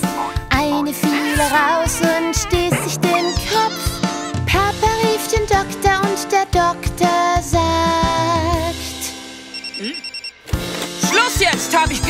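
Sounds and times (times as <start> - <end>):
children's song backing music: 0.0 - 9.2
held music note: 2.4 - 3.8
electronic phone ring trill: 9.5 - 10.4.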